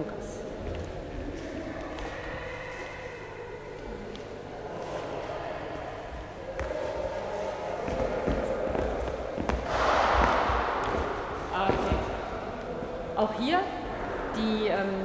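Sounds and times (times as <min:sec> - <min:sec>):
dance footsteps thudding on hall floor: 0:07.9 - 0:12.2.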